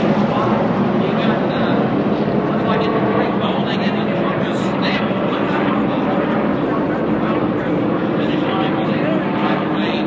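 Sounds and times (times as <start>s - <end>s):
distant engines running: 0.0s - 10.0s.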